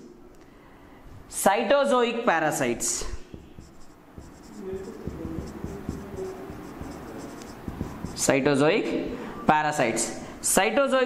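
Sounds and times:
marker pen writing on whiteboard: 0:02.8 - 0:08.5.

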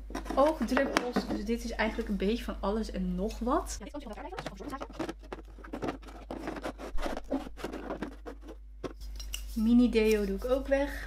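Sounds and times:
plastic tubs knocking in a drawer: 0:04.2 - 0:09.0.

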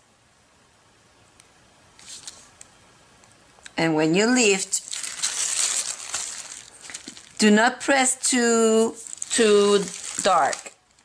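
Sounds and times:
paper sheet crinkling and rustling: 0:02.0 - 0:02.5, 0:04.8 - 0:11.0.

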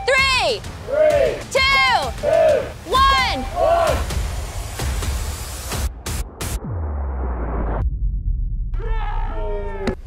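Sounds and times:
deep bass drop rumble: 0:03.5 - 0:09.8.

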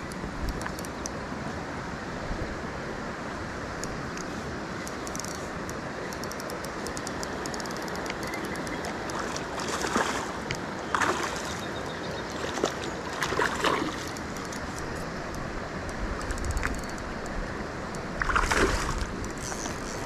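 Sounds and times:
faint clicks: 0:00.0 - 0:01.2, 0:03.8 - 0:09.5, 0:14.0 - 0:18.1
flowing creek water: 0:00.0 - 0:20.0.

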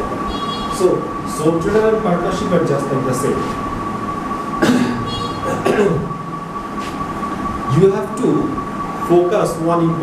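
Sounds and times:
high-pitched whine: 0:00.0 - 0:10.0
room noise: 0:00.0 - 0:10.0
man coughing: 0:04.6 - 0:06.2.

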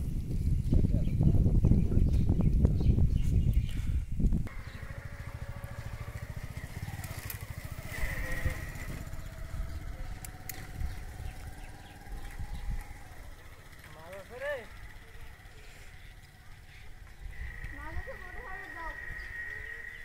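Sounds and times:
small engine running: 0:04.5 - 0:20.0.

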